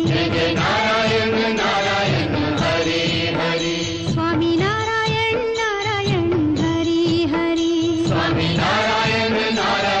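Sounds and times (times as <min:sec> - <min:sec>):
person singing a devotional chant: 0:00.0 - 0:05.9, 0:06.8 - 0:10.0
music: 0:00.0 - 0:10.0.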